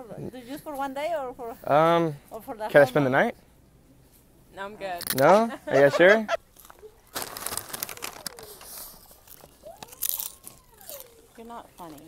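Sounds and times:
crunching: 6.3 - 12.0.

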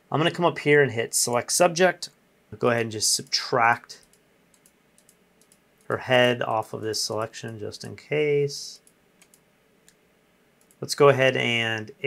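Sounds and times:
computer keys clicking: 4.0 - 6.0, 8.8 - 10.0, 10.6 - 10.9.

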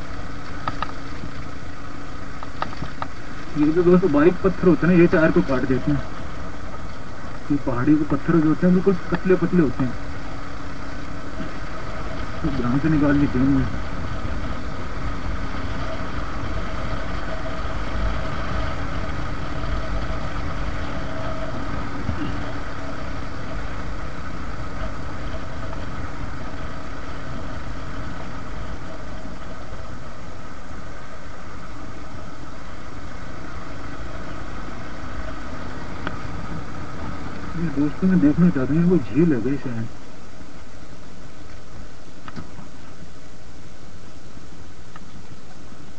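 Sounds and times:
motorcycle engine cruising: 0.0 - 39.6.

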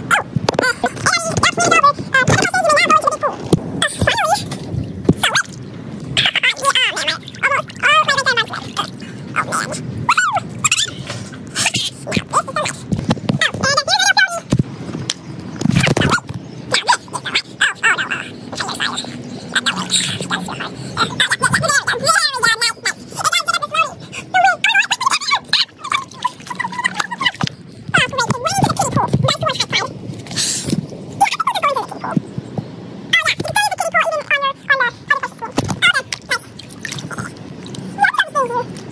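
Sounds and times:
high-pitched sped-up chattering: 6.2 - 14.5, 15.8 - 30.0, 31.2 - 32.3.

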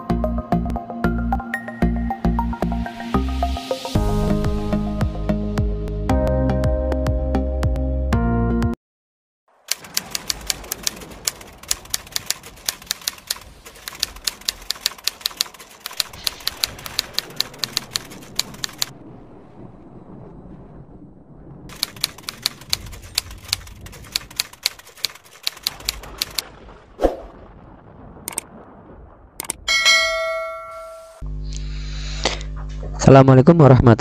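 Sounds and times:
typewriter keystroke clicks: 9.7 - 18.9, 21.7 - 26.4, 29.4 - 29.6.

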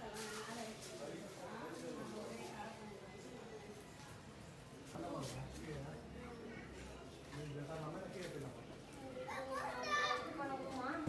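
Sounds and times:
faint background voices: 0.0 - 11.0
child-like voice: 9.3 - 10.4.

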